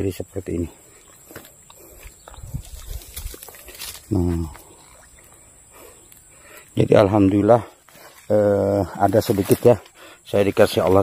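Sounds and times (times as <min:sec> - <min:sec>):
footsteps through grass: 0:01.0 - 0:05.1, 0:07.8 - 0:11.0.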